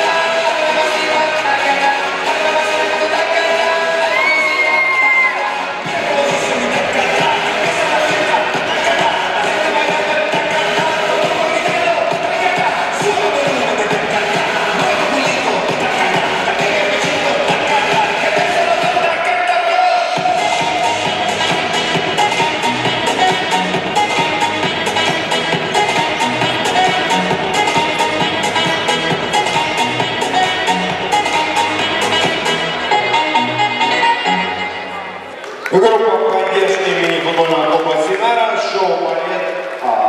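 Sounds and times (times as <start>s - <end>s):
dance music: 0.0s - 40.0s.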